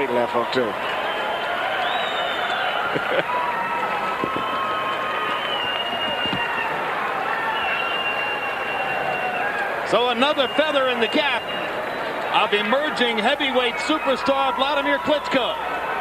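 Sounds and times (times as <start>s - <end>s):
crowd cheering and applauding: 0.0s - 16.0s.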